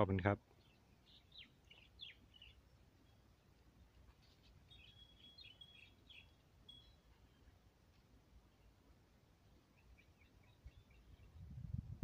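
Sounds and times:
faint bird chirps: 0.4 - 7.8, 8.4 - 11.7.

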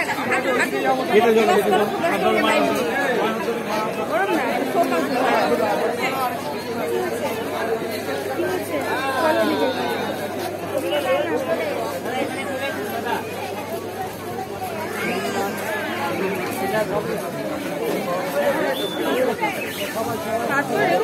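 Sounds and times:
people talking over one another: 0.0 - 21.0.

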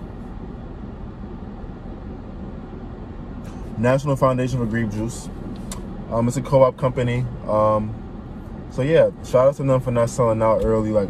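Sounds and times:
car cabin rumble and hiss: 0.0 - 11.0.

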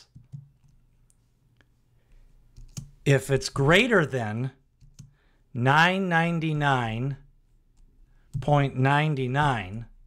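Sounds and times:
keyboard keystrokes: 2.6 - 2.9.

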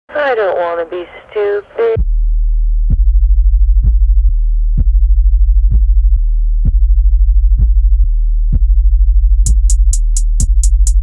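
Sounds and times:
deep bass note: 2.0 - 11.0
kick drum hits: 4.8 - 11.0.

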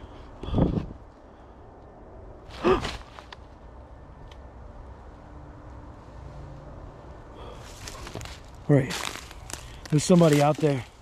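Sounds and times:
footsteps snapping dry twigs: 2.5 - 3.6, 7.6 - 11.0.

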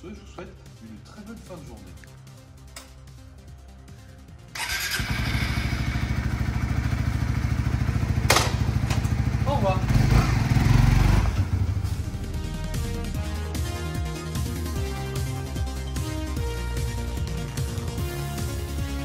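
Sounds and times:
motorcycle engine starting and idling: 4.5 - 12.6.

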